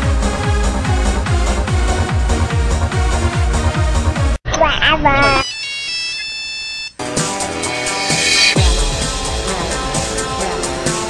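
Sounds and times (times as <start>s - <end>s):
phone ringtone: 5.4s - 7.0s
warbling sound: 7.4s - 9.2s.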